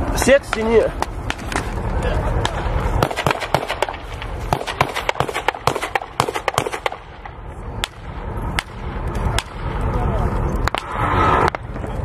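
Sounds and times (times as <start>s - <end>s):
gunshots: 2.4s - 9.8s.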